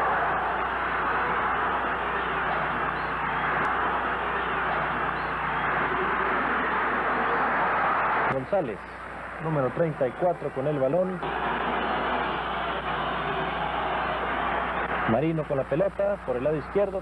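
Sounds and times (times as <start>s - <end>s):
stadium crowd noise: 0.0s - 17.0s.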